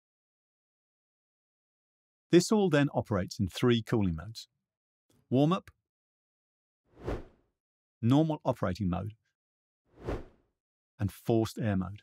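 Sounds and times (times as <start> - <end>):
whoosh transition effect: 7.0 - 7.3, 10.0 - 10.4.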